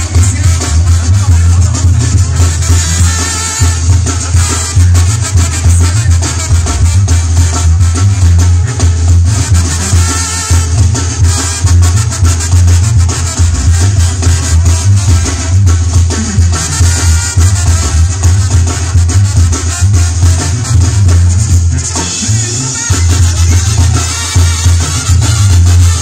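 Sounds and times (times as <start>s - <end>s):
congas and drum kit: 0.0s - 26.0s
sousaphone bass line: 0.0s - 26.0s
trumpets and trombones: 0.0s - 26.0s.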